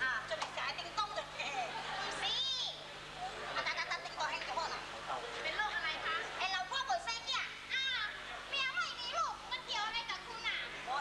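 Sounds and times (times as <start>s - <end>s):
high-pitched stage speech: 3.6s - 11.0s.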